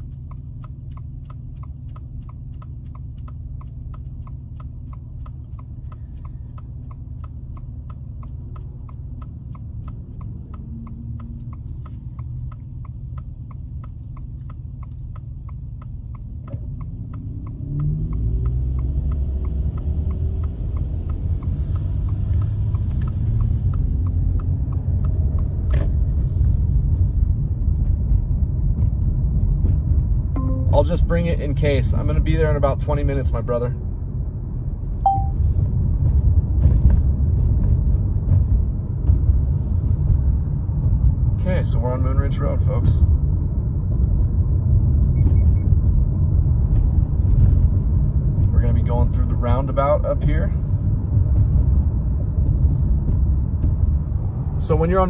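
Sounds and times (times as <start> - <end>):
car engine: 0.0 - 55.0
road noise: 0.0 - 55.0
turn signal clicking: 0.0 - 55.0.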